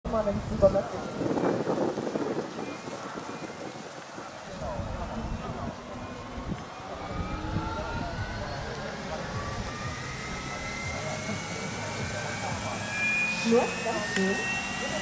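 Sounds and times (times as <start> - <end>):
model helicopter rotor whine: 0.1 - 15.0
low rumble: 3.8 - 14.9.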